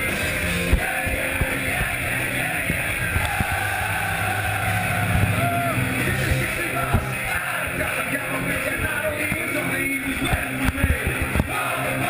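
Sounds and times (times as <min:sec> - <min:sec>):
high tone rising and falling: 0:00.0 - 0:07.5
bass guitar: 0:00.0 - 0:12.0
drums: 0:00.0 - 0:12.0
punk rock band playing live: 0:00.0 - 0:12.0.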